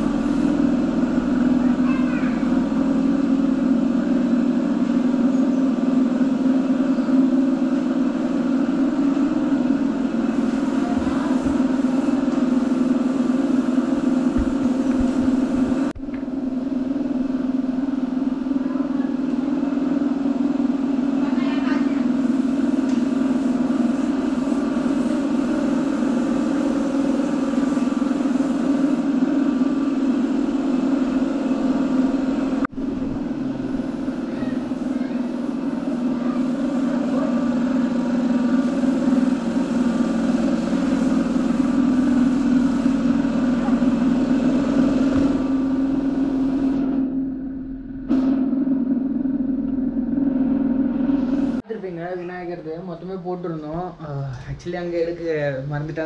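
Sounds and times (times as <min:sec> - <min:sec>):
loud low drone: 0:29.0 - 0:51.6.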